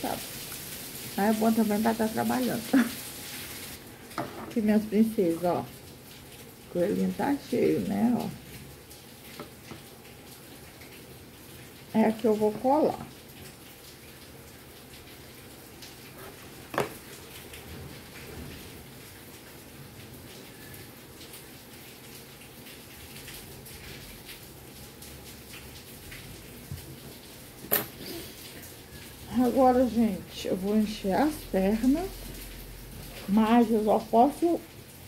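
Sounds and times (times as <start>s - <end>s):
heavy rain falling: 0.0s - 35.0s.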